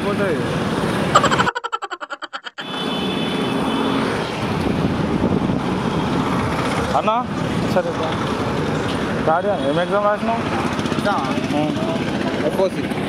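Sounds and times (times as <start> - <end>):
street traffic: 0.0 - 13.0
pulsing cartoon comedy sound effect: 1.2 - 2.6.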